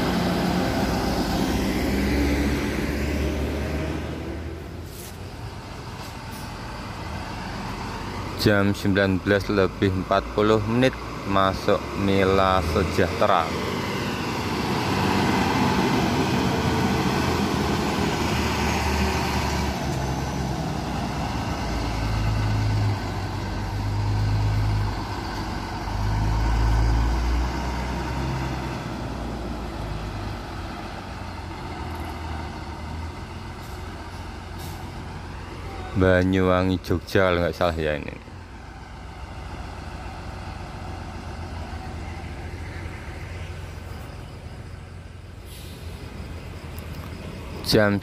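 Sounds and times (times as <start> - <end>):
bus diesel engine rumble: 0.0 - 48.0.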